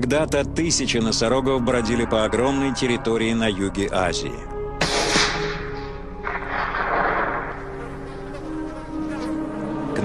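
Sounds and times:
low sustained music notes: 0.0 - 10.0
flies buzzing: 6.9 - 10.0.

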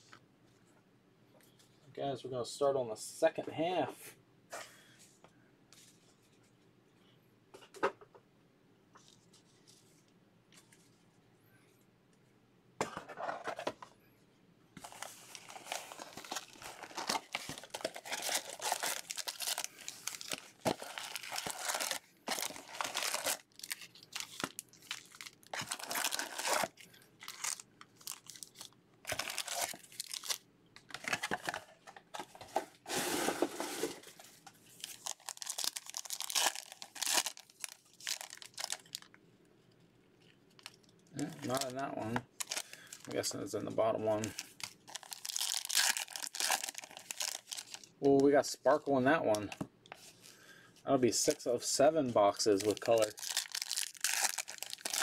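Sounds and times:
foil wrappers tearing and crinkling: 14.8 - 31.6, 34.7 - 39.1, 40.6 - 43.2, 44.1 - 47.9, 52.3 - 55.0.

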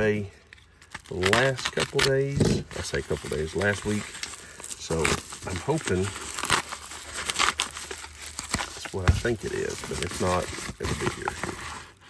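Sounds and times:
paper mailer crinkling: 0.6 - 12.0.

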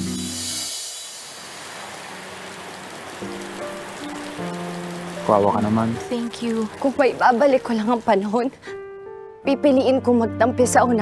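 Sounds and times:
rain falling steadily: 0.8 - 8.7
soft music with held notes: 3.2 - 11.0.

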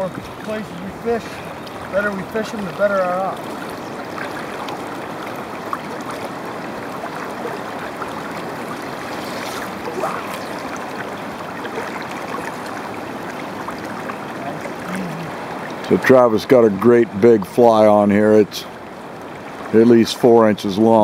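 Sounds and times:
river current rushing: 0.0 - 21.0.

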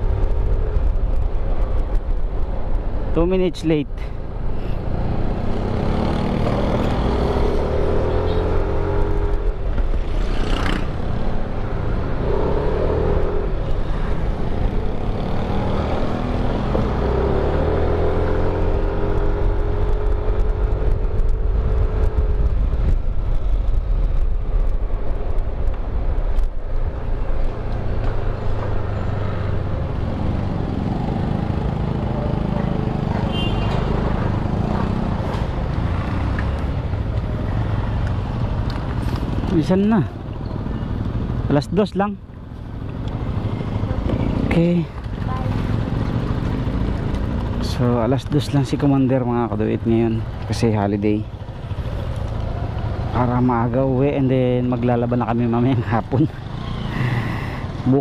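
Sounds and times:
road rumble: 0.0 - 58.0
wind noise: 18.8 - 31.0.

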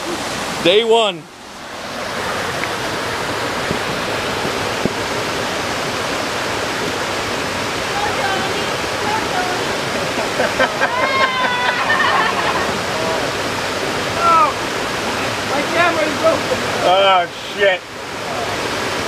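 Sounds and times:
waterfall rushing over rocks: 0.0 - 19.0
voices calling out: 7.9 - 17.5.

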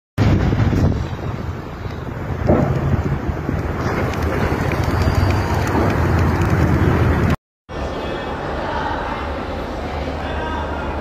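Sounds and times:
wind buffeting microphone: 0.2 - 7.4.

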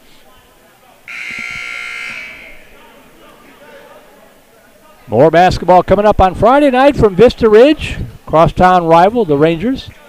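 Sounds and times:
faint crowd chatter: 0.0 - 10.0
scoreboard horn buzz: 1.1 - 2.9.

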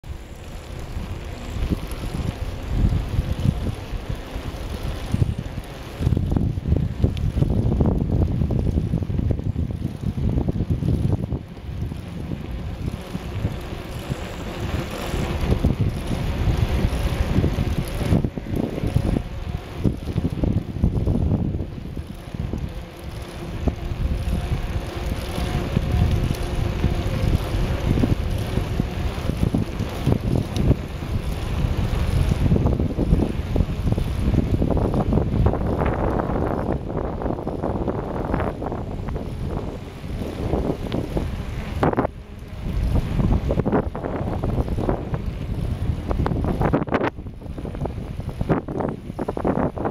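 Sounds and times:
wind buffeting microphone: 0.0 - 49.9.

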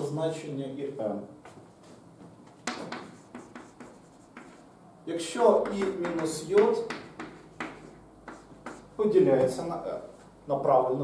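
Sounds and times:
chalk writing on chalkboard: 2.6 - 4.7, 5.6 - 9.0.

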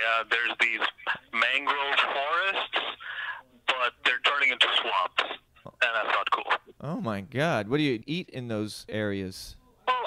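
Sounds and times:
voices talking: 0.0 - 6.8.

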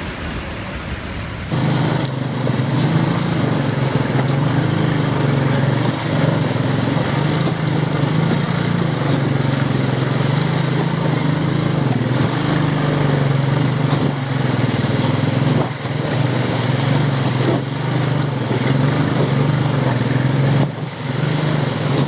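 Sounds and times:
motorcycle engine running: 1.4 - 22.0.

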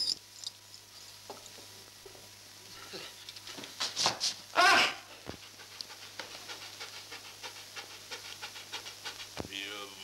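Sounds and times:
dog panting: 5.1 - 9.5.

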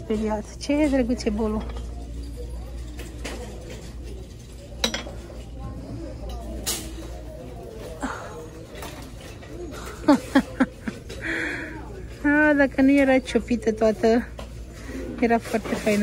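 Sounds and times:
ceramic bowl clinking: 4.8 - 5.3.

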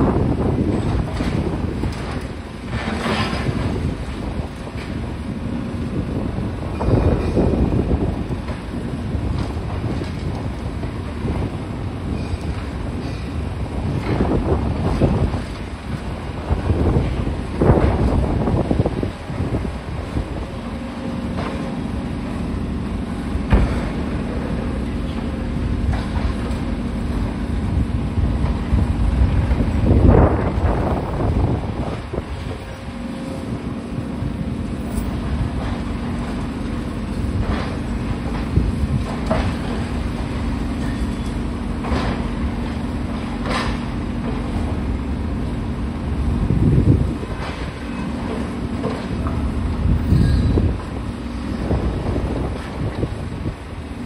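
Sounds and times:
excavator diesel engine droning: 0.0 - 54.0.

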